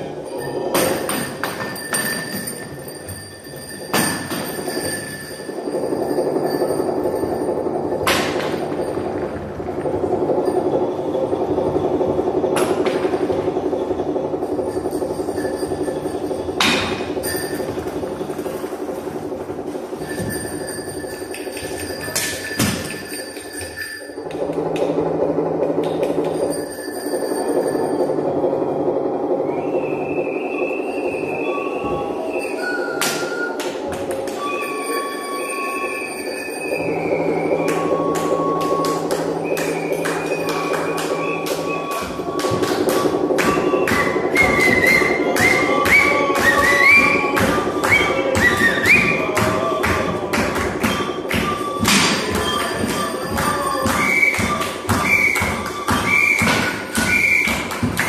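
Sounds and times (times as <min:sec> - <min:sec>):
electronic drone: 0:00.0 - 0:58.0
high whistling tones: 0:00.0 - 0:58.0.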